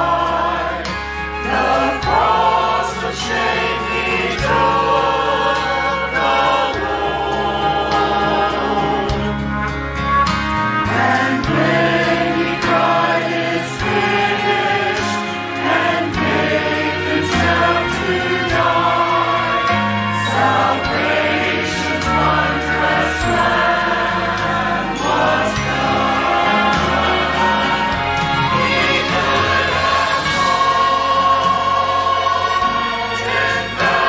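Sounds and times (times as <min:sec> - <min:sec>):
group singing gospel song: 0:00.0 - 0:09.5, 0:10.7 - 0:34.0
instrumental accompaniment: 0:00.0 - 0:34.0.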